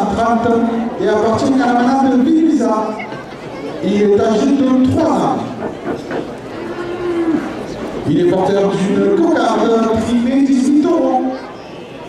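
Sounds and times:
bull lowing: 0:05.4 - 0:08.1.

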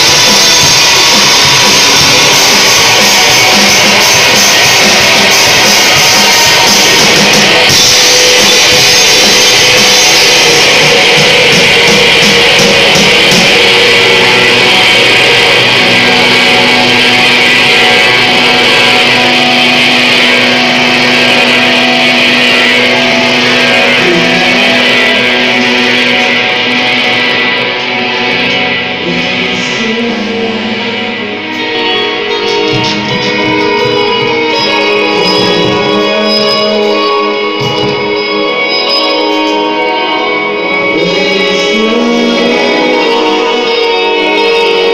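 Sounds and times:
drums and cymbals: 0:00.0 - 0:44.9
electric guitars: 0:00.0 - 0:44.9.

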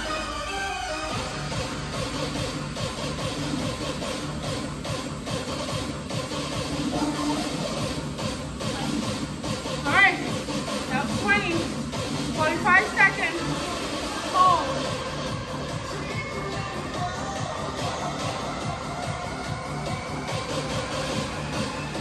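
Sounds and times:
workout music with steady beat: 0:00.0 - 0:22.0.

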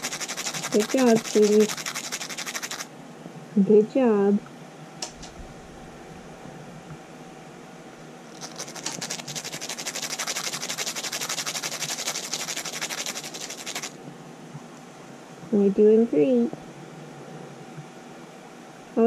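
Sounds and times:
nail file rasping: 0:00.0 - 0:02.9, 0:08.4 - 0:13.9.

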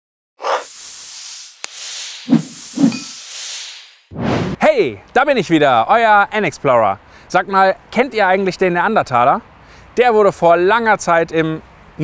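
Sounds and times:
airy whoosh: 0:01.4 - 0:04.6.

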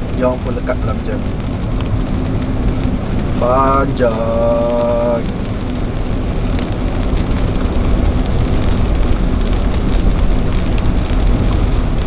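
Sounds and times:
low rumble of a car: 0:00.0 - 0:12.0
rain on a car roof: 0:00.0 - 0:12.0.

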